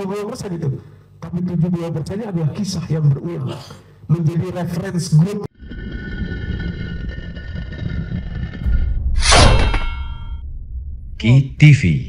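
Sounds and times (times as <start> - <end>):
low rumble: 5.7 - 12.0.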